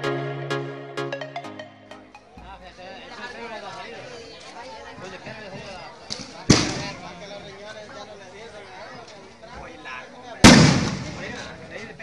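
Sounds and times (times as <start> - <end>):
crowd chatter: 0.0 - 12.0
loud sharp bang: 10.4 - 11.6.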